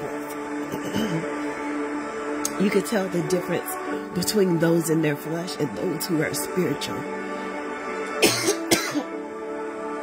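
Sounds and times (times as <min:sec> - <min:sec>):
soft music of sustained chords: 0:00.0 - 0:10.0
person coughing: 0:08.1 - 0:09.2.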